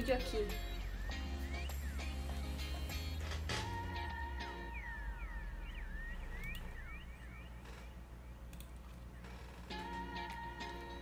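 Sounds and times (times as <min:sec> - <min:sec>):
low steady hum: 0:00.0 - 0:11.0
chirp-like pitch glides: 0:04.1 - 0:08.5
faint clicks: 0:08.5 - 0:09.0.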